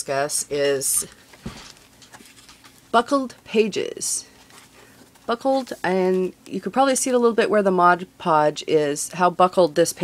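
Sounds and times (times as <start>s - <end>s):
paper rustling: 1.0s - 2.9s, 4.4s - 6.3s.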